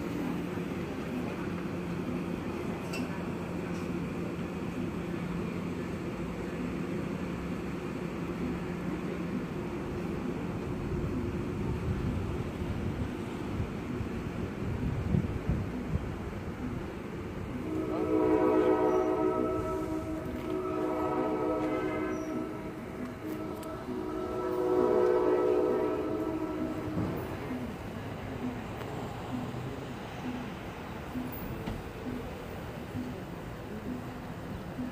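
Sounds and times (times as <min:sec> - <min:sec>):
train rumbling: 0:00.0 - 0:34.9
multi-tone train horn blasts: 0:17.5 - 0:27.8.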